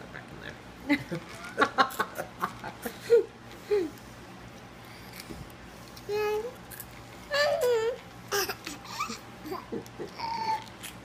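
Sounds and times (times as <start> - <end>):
toddler laughing: 7.3 - 10.7.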